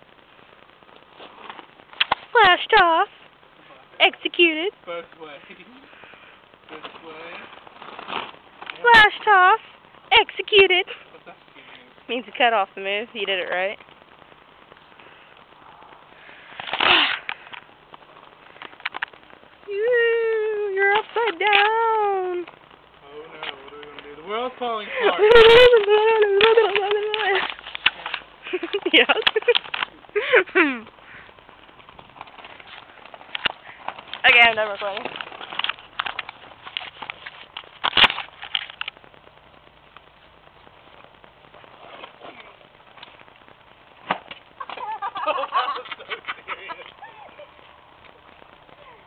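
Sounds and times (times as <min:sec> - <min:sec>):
microphone handling crackles: 0:20.8 - 0:49.0.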